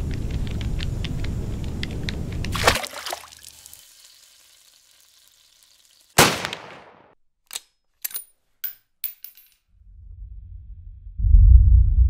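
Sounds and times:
low rumble: 0:09.8 - 0:12.0.

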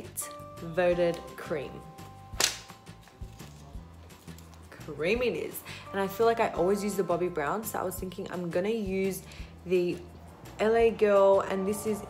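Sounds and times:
faint background music: 0:00.0 - 0:12.0
sharp crack: 0:02.4 - 0:02.8.

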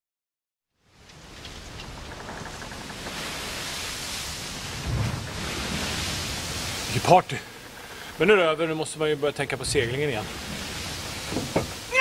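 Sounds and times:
steady rushing noise: 0:01.0 - 0:12.0
low thump: 0:11.2 - 0:11.8.

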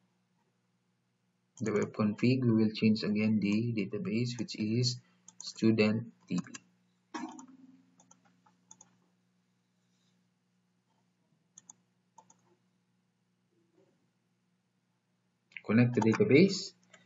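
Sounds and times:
faint low hum: 0:00.0 - 0:17.0
mouse and keyboard clicks: 0:07.2 - 0:09.0, 0:11.6 - 0:12.5, 0:15.9 - 0:16.3.

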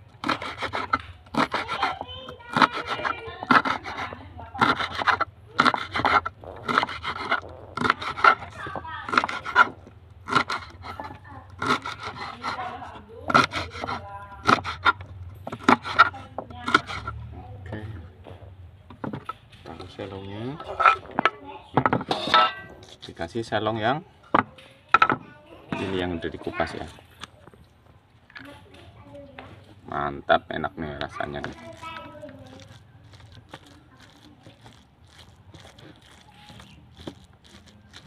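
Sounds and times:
knife chopping on wooden board: 0:00.2 - 0:08.5, 0:09.1 - 0:09.7, 0:10.3 - 0:17.1.

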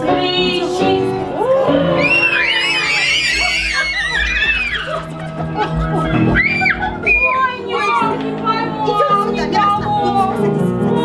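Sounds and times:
background music: 0:00.0 - 0:11.0
children shrieking and squealing: 0:01.3 - 0:08.2.

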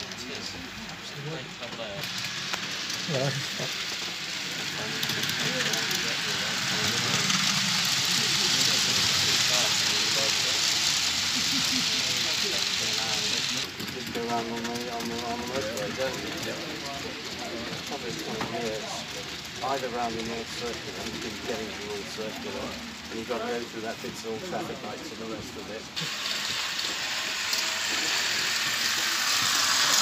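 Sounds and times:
model train wheels on rails: 0:00.0 - 0:30.0.

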